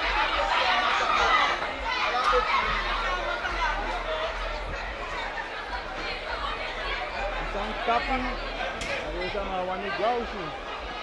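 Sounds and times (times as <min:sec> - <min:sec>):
crowd babble: 0:00.0 - 0:11.0.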